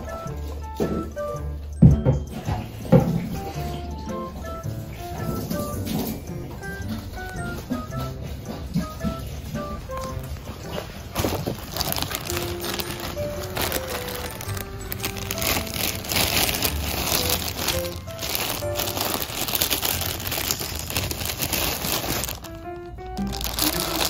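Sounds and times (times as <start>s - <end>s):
light background music: 0.0s - 24.0s
plastic bag crinkling: 9.9s - 24.0s.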